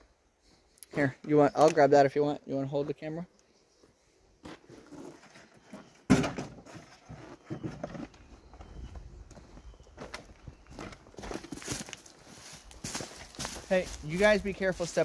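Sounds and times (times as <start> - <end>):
footsteps on dry leaves and twigs: 8.2 - 15.0.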